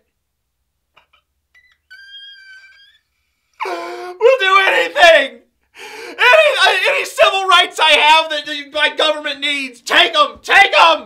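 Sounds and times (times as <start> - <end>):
man whimpering in falsetto: 3.6 - 4.3.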